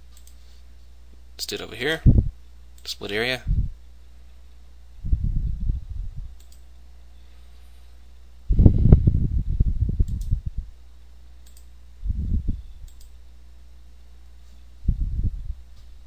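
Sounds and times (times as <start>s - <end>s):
steady low hum: 0.0s - 16.0s
computer mouse clicking: 0.1s - 0.4s, 6.4s - 6.6s, 10.0s - 10.4s, 11.4s - 11.7s, 12.9s - 13.1s.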